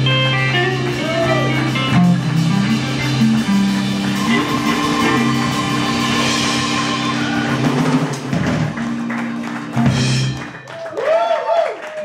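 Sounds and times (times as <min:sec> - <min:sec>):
drum kit strikes: 0:00.0 - 0:10.6
electric guitars and keyboard chord: 0:00.0 - 0:10.6.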